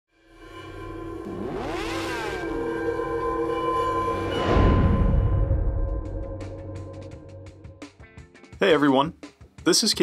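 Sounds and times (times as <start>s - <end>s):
synthetic drone with pitch sweeps: 0.1s - 7.8s.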